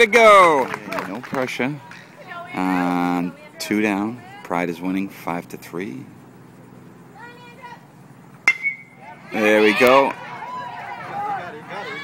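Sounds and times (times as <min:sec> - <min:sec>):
metal bat hitting ball: 0:08.4 - 0:09.0
faint voices: 0:08.9 - 0:12.0.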